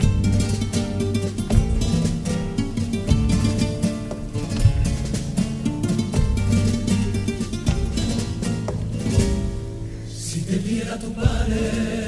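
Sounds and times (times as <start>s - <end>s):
male choir singing: 10.1s - 12.0s.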